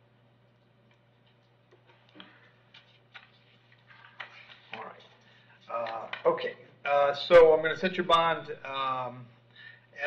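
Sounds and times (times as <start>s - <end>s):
steady low hum: 0.0s - 10.0s
faint clicks and taps: 0.6s - 5.1s.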